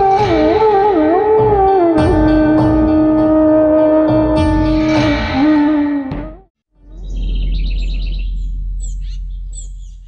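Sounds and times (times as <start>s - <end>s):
birds chirping: 6.8s - 10.0s.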